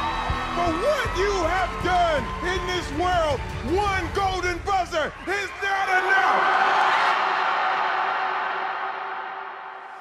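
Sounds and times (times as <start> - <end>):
crowd cheering: 0.0 - 10.0.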